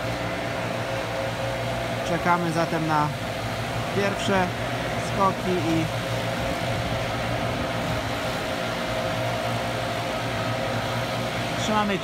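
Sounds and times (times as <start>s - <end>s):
machine humming with held tone: 0.0s - 11.8s.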